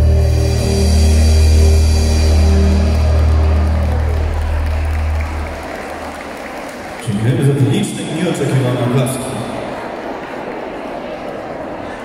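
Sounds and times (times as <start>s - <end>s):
live band holding a chord: 0.0s - 6.3s
audience applause: 1.2s - 7.8s.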